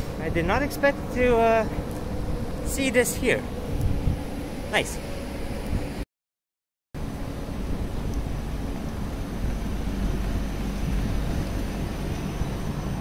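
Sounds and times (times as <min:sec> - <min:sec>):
standing train rumble and hiss: 0:00.0 - 0:06.0, 0:07.0 - 0:13.0.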